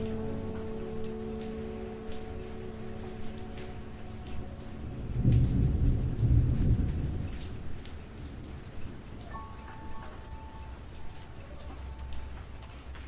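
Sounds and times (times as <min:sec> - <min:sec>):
steady rain: 0:00.0 - 0:13.0
low roll of thunder: 0:04.1 - 0:10.3.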